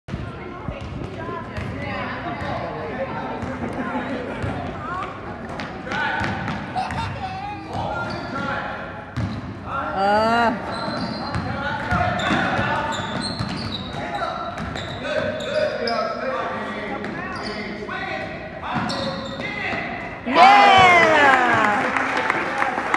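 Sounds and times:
voices echoing in gym: 0.1 - 22.9.

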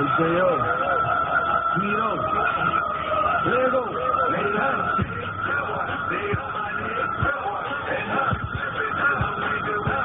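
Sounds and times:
steady high tone: 0.0 - 10.0.

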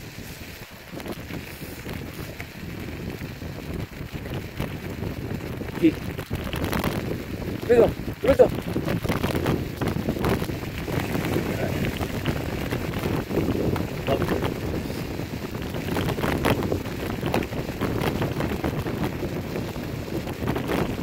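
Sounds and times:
scooter tyres rolling on gravel: 0.0 - 21.0
wind buffeting microphone: 0.0 - 21.0.

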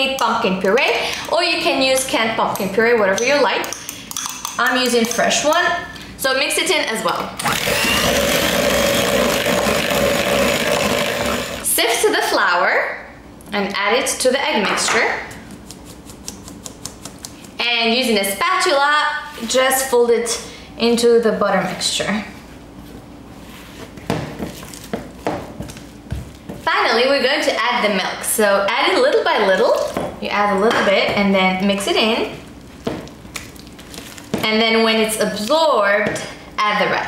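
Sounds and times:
electric hand mixer running: 7.4 - 11.7.

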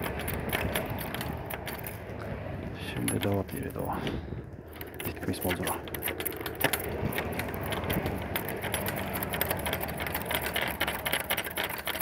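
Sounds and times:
steady low hum: 0.0 - 12.0
metal lock handle clinking: 4.6 - 12.0.

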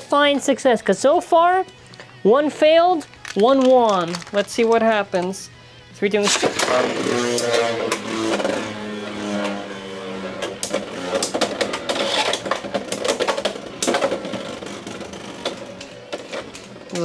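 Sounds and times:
spinning tops whirring: 6.2 - 16.8.

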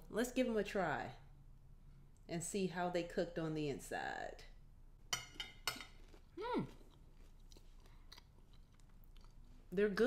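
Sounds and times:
chewing crispy waffle: 6.0 - 9.7.

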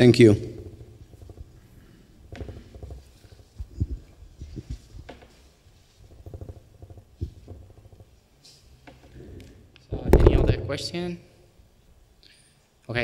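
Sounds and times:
soft thumps and knocks on microphone: 0.4 - 5.4, 6.0 - 8.1.

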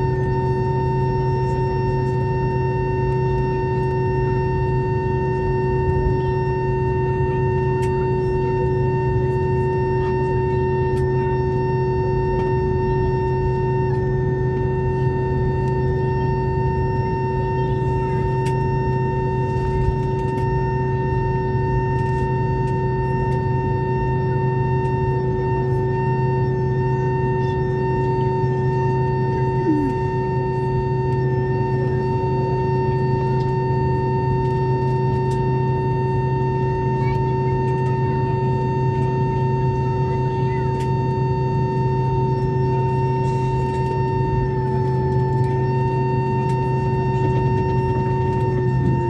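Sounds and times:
jet engines idling whine: 0.0 - 49.0.

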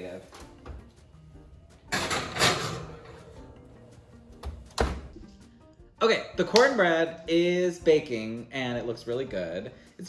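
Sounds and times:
quiet background music: 0.0 - 10.0
oven door shutting: 1.8 - 5.2.

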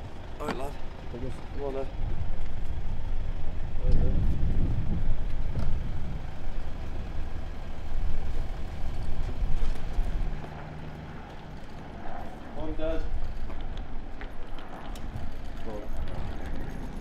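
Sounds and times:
vehicle engines idling: 0.0 - 17.0.

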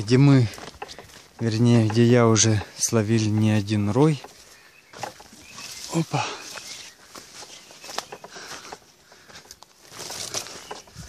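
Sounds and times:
footsteps on leaves and twigs: 0.0 - 11.0
undergrowth rustle: 0.0 - 11.0.

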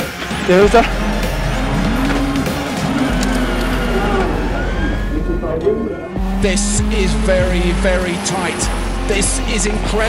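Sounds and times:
rally car engine revving: 0.0 - 10.0
voices: 0.0 - 10.0.

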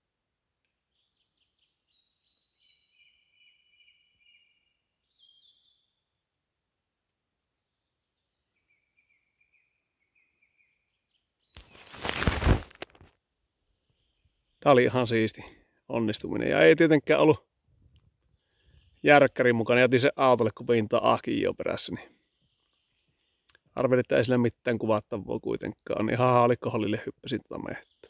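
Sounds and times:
faint bird song: 0.0 - 12.6, 13.2 - 28.0.

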